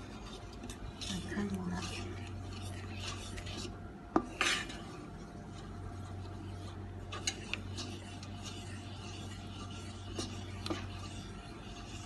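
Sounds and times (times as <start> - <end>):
spoon scraping while stirring: 0.0 - 12.0.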